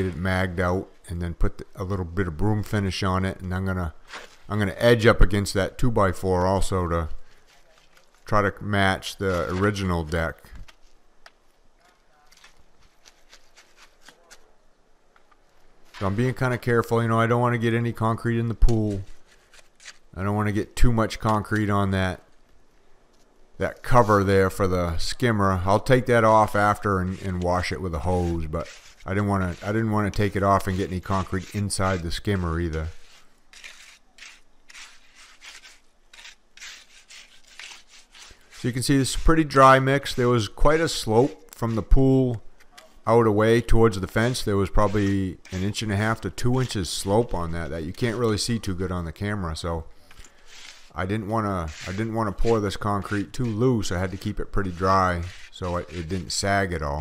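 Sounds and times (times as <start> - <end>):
trowel scraping concrete: 0.0 - 1.0, 4.0 - 5.5, 6.2 - 10.8, 12.2 - 14.5, 15.8 - 22.2, 23.7 - 57.0
quiet outdoor background: 0.0 - 57.0.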